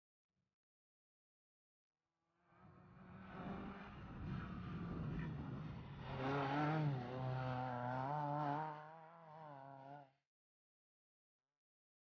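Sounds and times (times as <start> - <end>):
rally car engine revving: 3.1 - 10.1.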